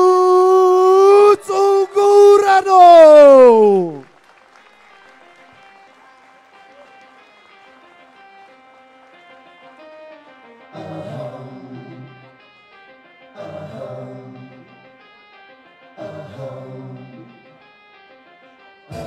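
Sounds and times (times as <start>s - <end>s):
announcer calling through pa: 0.0s - 4.0s.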